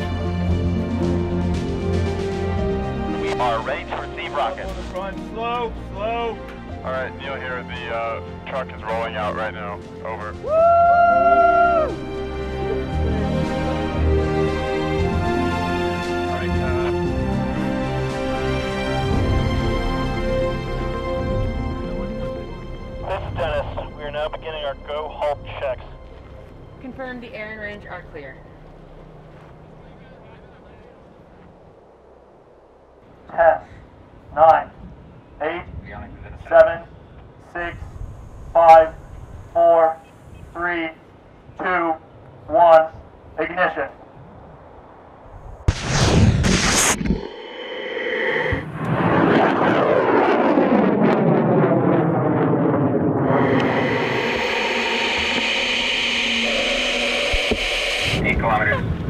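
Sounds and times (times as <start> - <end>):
low outdoor rumble: 0.0 - 59.0
faint indistinct voices: 29.4 - 31.6
rocket motor roaring: 37.7 - 40.6, 45.5 - 59.0
rocket hiss: 45.3 - 49.7, 53.2 - 58.7.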